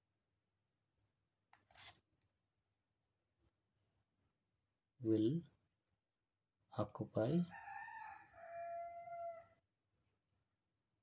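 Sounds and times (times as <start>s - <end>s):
distant rooster crowing: 7.5s - 9.6s.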